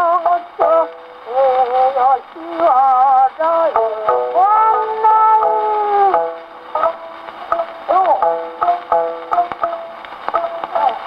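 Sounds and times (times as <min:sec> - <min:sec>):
shamisen plucks: 0:03.6 - 0:11.0.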